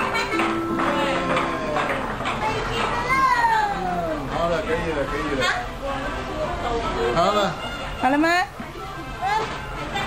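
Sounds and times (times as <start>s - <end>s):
children's excited voices: 0.0s - 4.3s.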